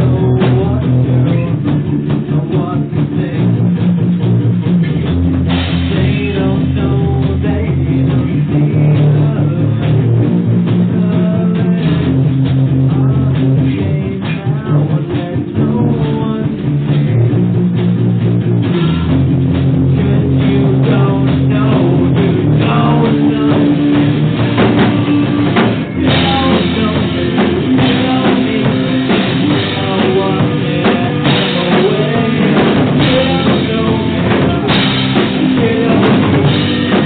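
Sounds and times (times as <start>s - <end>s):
rock band playing: 0.0s - 37.0s.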